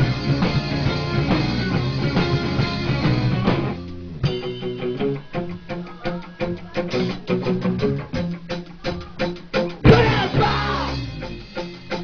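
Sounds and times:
electric guitar notes: 0.0 - 12.0
live rock band playing: 0.0 - 12.0
drum hits: 9.0 - 12.0.

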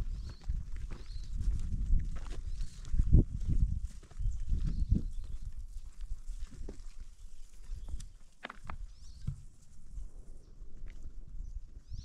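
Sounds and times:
footsteps on loose stones: 0.0 - 9.6.

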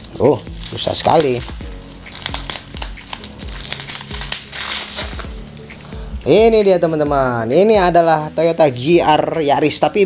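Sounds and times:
bubble wrap crinkling: 0.0 - 6.7
faint background music: 0.0 - 10.0.

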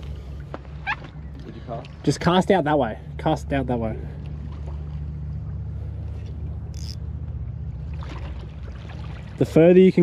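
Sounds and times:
motorboat engine droning: 0.0 - 10.0.

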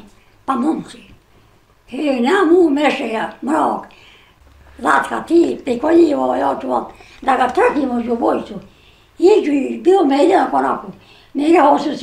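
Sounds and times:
elderly woman speaking: 0.0 - 1.2, 1.9 - 4.0, 4.7 - 12.0.

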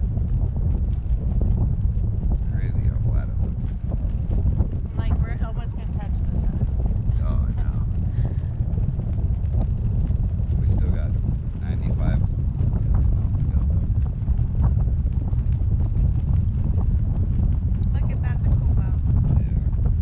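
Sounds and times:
wind buffeting microphone: 0.0 - 20.0
faint voices: 4.9 - 8.4, 10.6 - 14.0.

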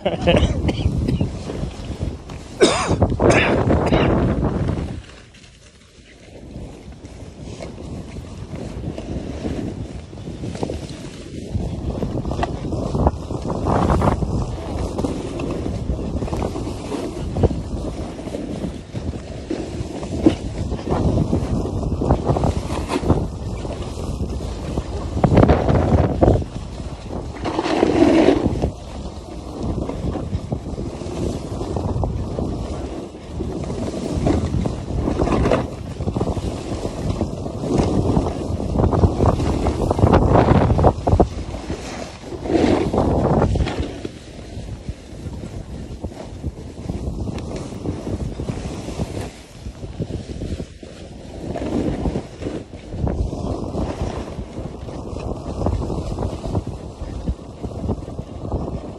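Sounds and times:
wind buffeting microphone: 0.0 - 58.9
skis hissing through snow: 8.6 - 25.2, 26.6 - 29.9, 30.8 - 31.8, 36.1 - 54.4.

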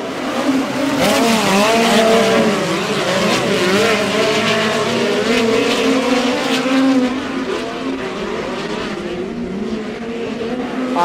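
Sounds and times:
race car engines running hard: 0.0 - 11.0.

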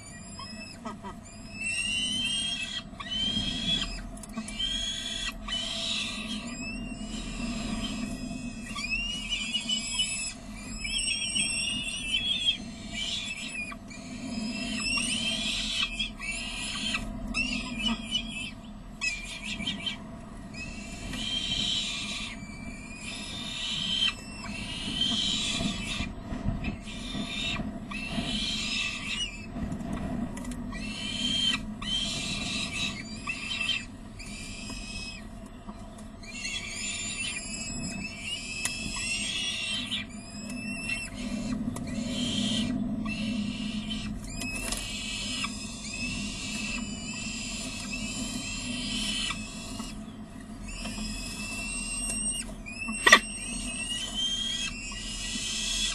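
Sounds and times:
falcon chicks calling: 0.0 - 29.6, 30.7 - 55.9.

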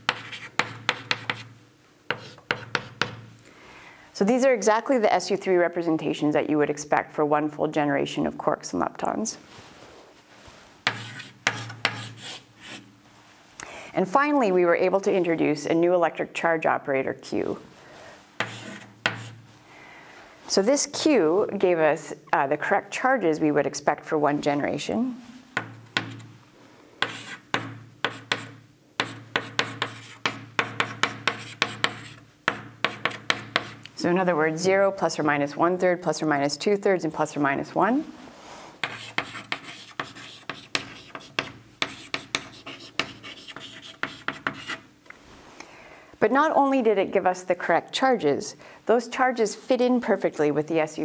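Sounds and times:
chalk writing on blackboard: 0.0 - 1.5, 2.1 - 3.2, 10.8 - 12.9, 18.4 - 19.4, 27.0 - 33.8, 38.8 - 44.8.

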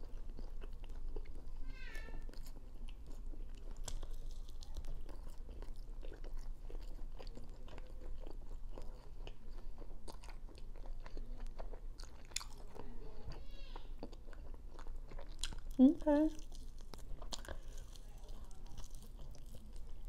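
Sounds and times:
chewing chicken wing: 0.0 - 20.0.

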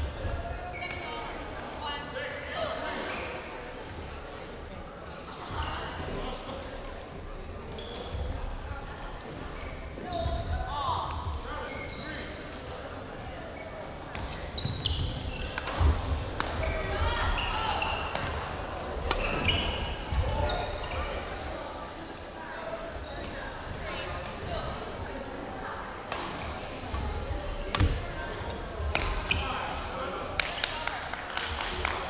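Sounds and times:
sneakers squeaking: 0.0 - 1.4, 2.0 - 4.0, 5.4 - 6.4, 7.4 - 21.5, 22.8 - 24.9, 26.1 - 29.8
voices echoing: 0.0 - 32.0.

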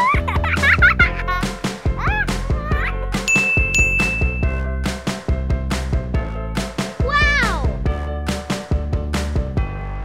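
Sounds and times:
background music with steady beat: 0.0 - 10.0
bright bell-like ding: 3.3 - 4.7.

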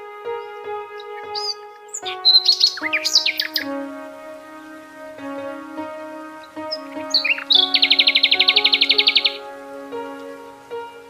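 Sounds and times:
bird song: 0.0 - 4.1, 5.2 - 11.0
ambient meditation music: 0.0 - 11.0.

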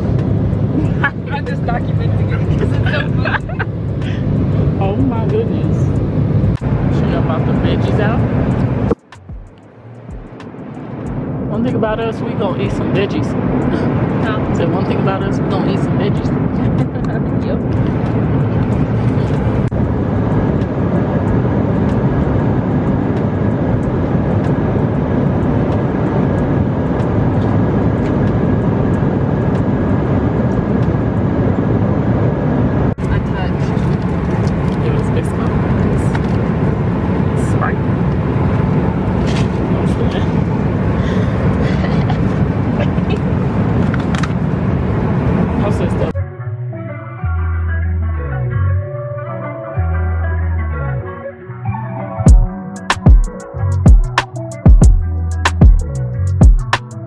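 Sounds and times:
airliner cabin engine rush: 0.0 - 46.2.

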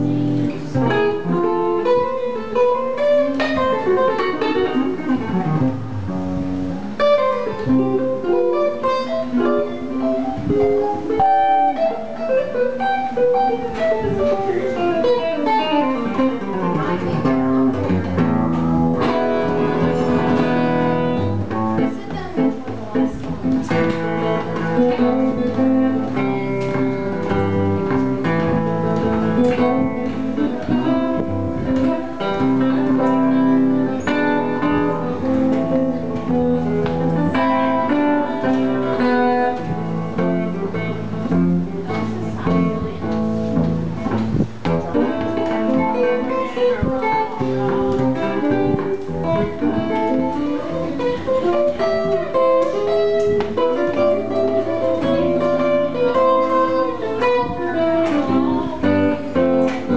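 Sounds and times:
jazz electric guitar: 0.0 - 59.9.

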